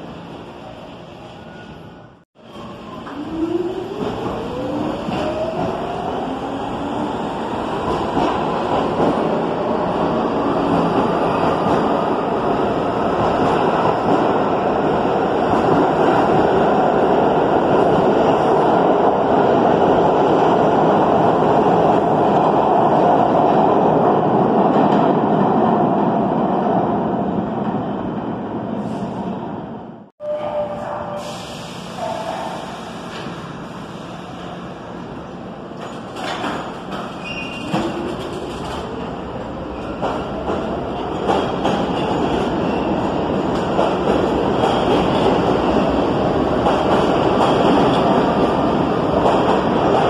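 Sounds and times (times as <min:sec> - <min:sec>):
train wheel and rail noise: 0:00.0 - 0:50.0.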